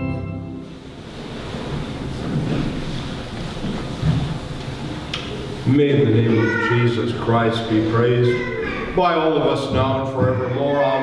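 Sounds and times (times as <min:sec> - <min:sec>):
church organ chord: 0:00.0 - 0:01.2
low rushing room noise: 0:00.2 - 0:11.0.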